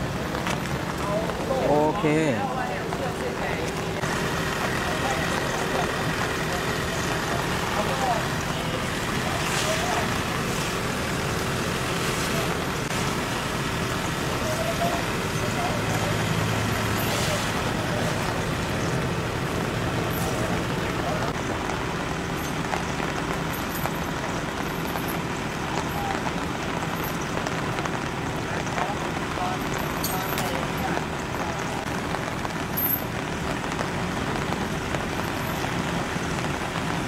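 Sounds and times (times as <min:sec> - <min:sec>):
indistinct voices: 0:00.0 - 0:36.1
road traffic: 0:00.0 - 0:37.0.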